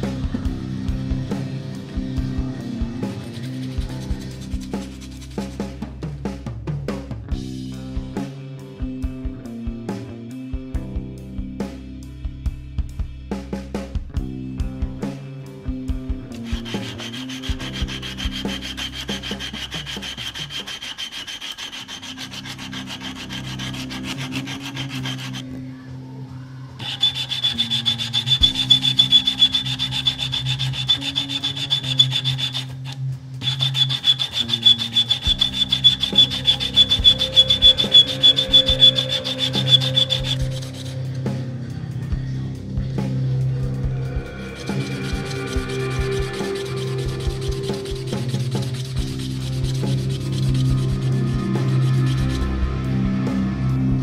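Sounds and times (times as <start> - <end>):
hand sanding wood: 3.1 - 5.6, 16.4 - 25.4, 26.8 - 40.9, 44.6 - 52.5.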